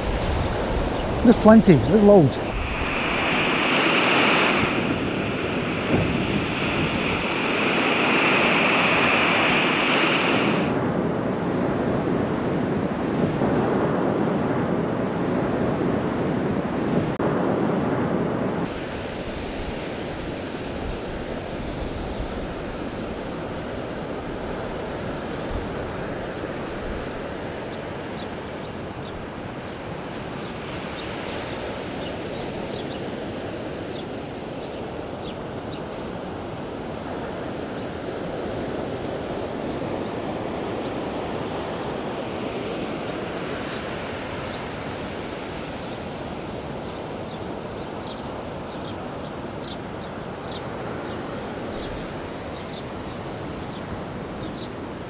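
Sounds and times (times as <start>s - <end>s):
surf washing onto beach: 0.0s - 12.0s, 16.2s - 48.6s
wind: 0.0s - 55.0s.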